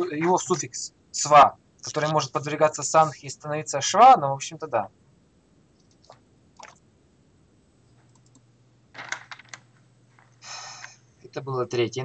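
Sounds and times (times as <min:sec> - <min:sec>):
keyboard typing: 0:05.8 - 0:06.8, 0:08.0 - 0:08.4, 0:09.0 - 0:10.9.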